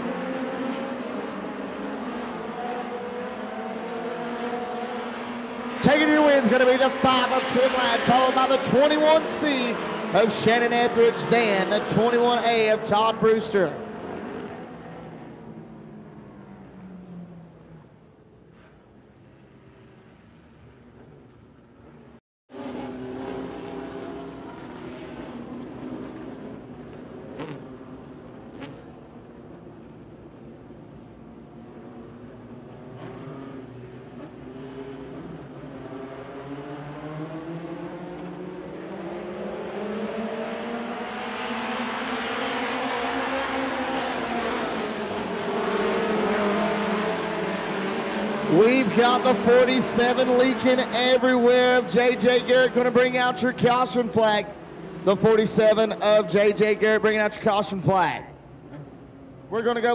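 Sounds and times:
race car engines droning: 0.0s - 59.9s.

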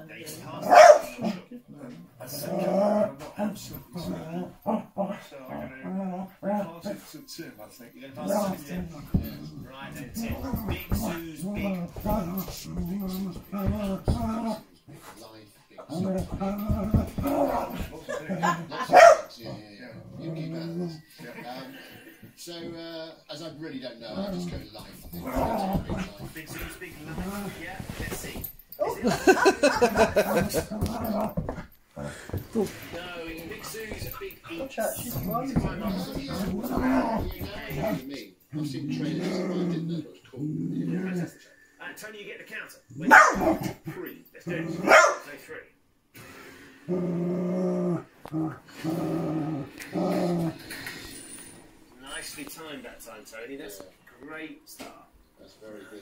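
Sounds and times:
dog growling and whining: 2.2s - 3.2s, 4.0s - 6.6s, 10.2s - 14.7s, 15.8s - 18.8s, 19.5s - 21.0s, 24.1s - 26.2s, 35.0s - 38.0s, 38.6s - 41.3s, 46.8s - 50.8s.

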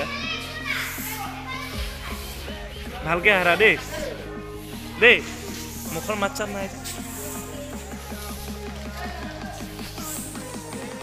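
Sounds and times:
children's voices: 0.0s - 6.2s.

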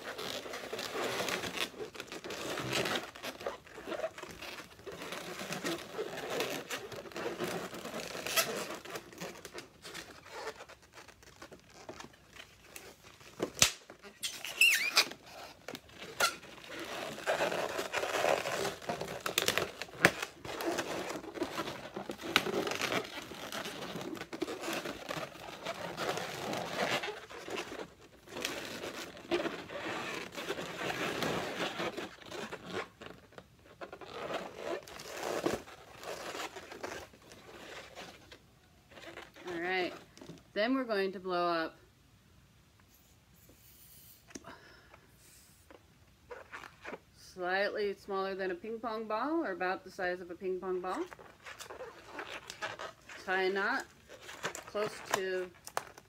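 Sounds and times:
balloons rubbing and squeaking: 0.0s - 40.9s, 42.9s - 47.4s, 50.3s - 56.0s.

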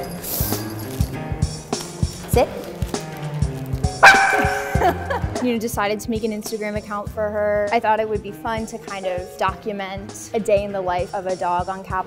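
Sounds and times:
background music with beat: 0.0s - 5.5s
puppy high-pitched bark: 4.0s - 5.2s.

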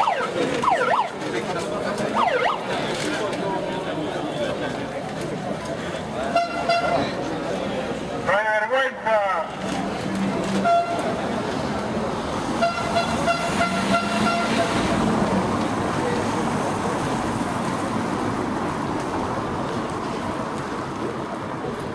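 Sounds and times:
street noise: 0.0s - 21.9s
horn blasts: 12.6s - 14.7s.

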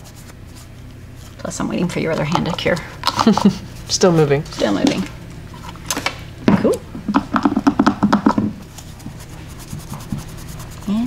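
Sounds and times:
wipe rubbing on nails: 8.6s - 11.0s.

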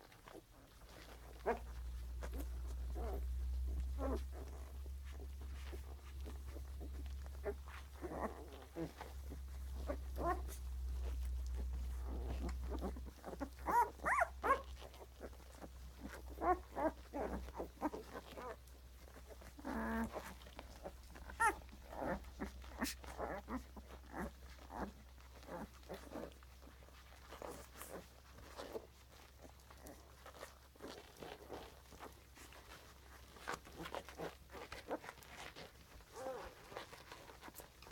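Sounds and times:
puppies grunting and squeaking: 0.0s - 37.9s.

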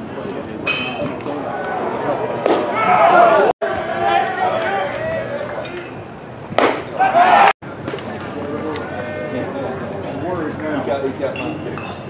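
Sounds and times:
voices chattering: 0.0s - 12.0s
people shouting: 1.5s - 5.5s, 6.9s - 7.6s
baseball smacking into mitt: 6.5s - 6.9s.

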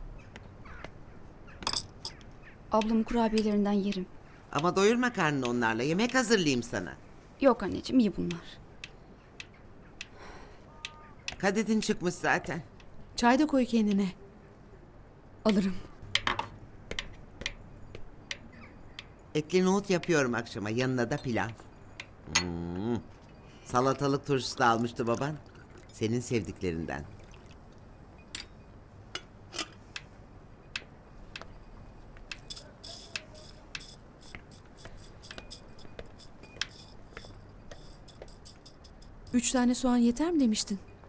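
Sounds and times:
dishes clicking and knocking: 1.6s - 2.3s, 16.1s - 17.6s, 28.3s - 29.8s, 32.2s - 39.3s.

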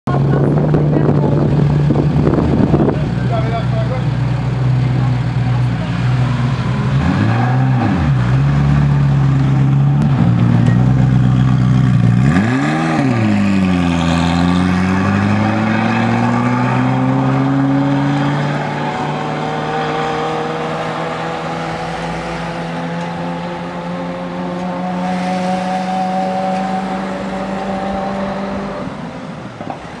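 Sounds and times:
sports car engine revving: 0.3s - 29.2s.

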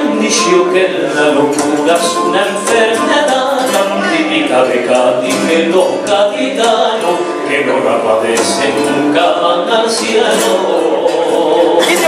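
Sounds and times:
man singing into microphone: 0.0s - 12.0s
musical accompaniment: 0.0s - 12.0s.

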